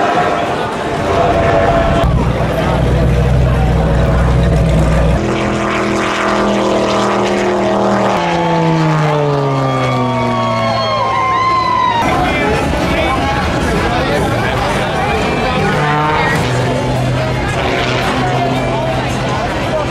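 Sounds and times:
powerboat engines at high speed: 0:00.0 - 0:19.9.

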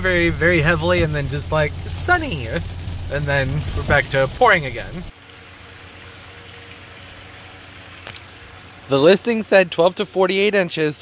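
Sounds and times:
even hiss: 0:00.0 - 0:05.1.

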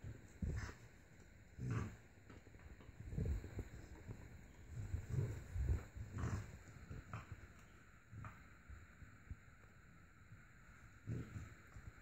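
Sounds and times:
dog grunting: 0:00.4 - 0:00.9, 0:01.6 - 0:02.0, 0:04.8 - 0:07.4, 0:11.0 - 0:11.6.

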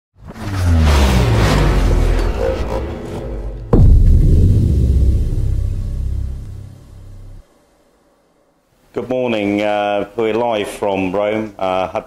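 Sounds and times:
deep cinematic boom rumble: 0:01.3 - 0:07.4.

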